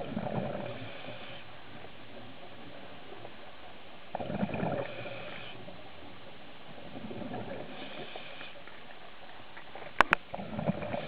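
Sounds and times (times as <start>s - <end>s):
exhaled bubbles underwater: 0.0s - 3.4s, 4.1s - 5.8s, 6.7s - 8.5s.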